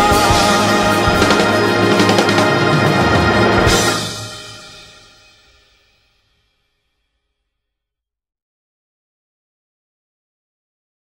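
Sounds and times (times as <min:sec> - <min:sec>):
swing band closing chord: 0:00.0 - 0:05.4
cymbal ringing: 0:00.0 - 0:06.1.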